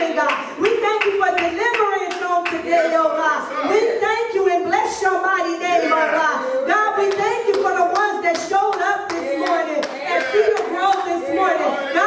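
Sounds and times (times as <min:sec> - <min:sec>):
hand clapping: 0:00.3 - 0:02.6, 0:07.1 - 0:11.2
person speaking: 0:09.1 - 0:12.0.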